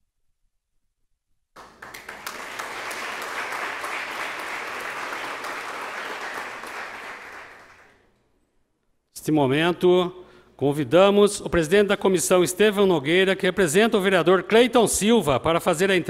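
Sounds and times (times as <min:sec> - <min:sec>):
crowd applauding: 0:01.6 - 0:08.0.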